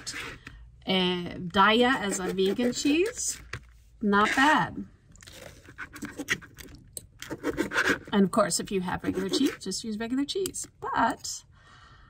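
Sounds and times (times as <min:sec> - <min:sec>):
knife sawing through pizza crust: 0:01.9 - 0:03.2, 0:09.0 - 0:09.6.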